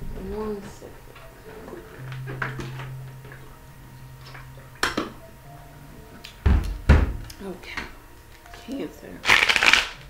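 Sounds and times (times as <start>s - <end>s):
small objects clicking and clinking: 9.2s - 10.0s.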